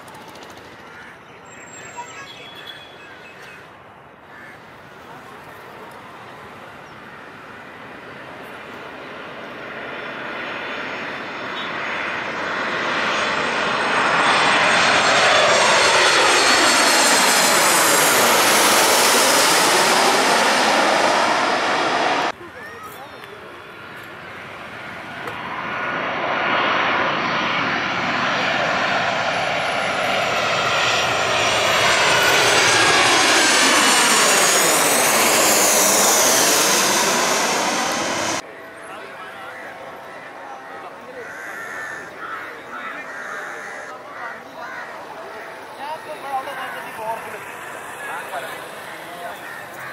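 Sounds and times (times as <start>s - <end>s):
jet airliners passing overhead: 0.0s - 49.9s.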